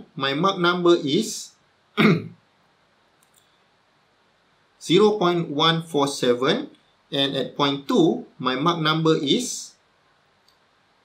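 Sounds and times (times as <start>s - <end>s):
man speaking: 0.0s - 2.4s, 4.8s - 9.8s.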